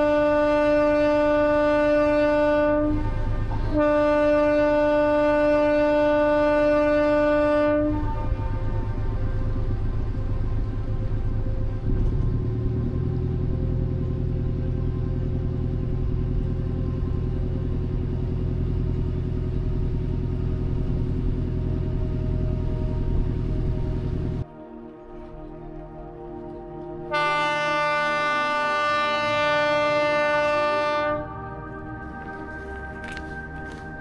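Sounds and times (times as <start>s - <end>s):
ship engine rumbling: 0.0s - 34.0s
ship horn blast: 0.0s - 34.0s.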